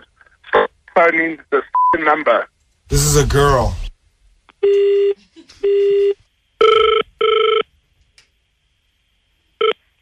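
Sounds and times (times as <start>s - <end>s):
telephone ringback tone: 5.7s - 7.6s.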